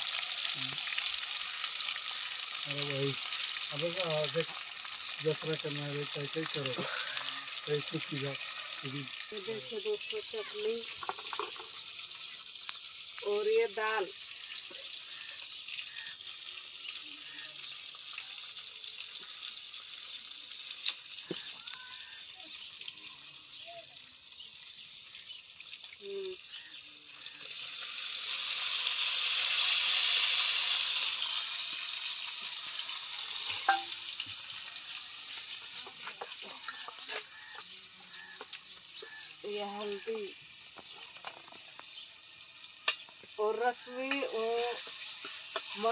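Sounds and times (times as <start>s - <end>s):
dal pouring into pot: 0.0s - 9.8s, 10.6s - 23.6s, 25.2s - 43.4s
masala sizzling in a pot: 0.0s - 45.9s.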